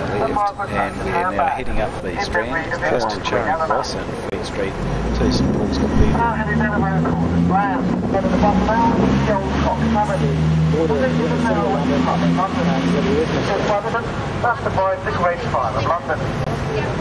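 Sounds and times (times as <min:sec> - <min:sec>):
bus engine droning: 0:00.0 - 0:17.0
indistinct talking: 0:00.0 - 0:17.0.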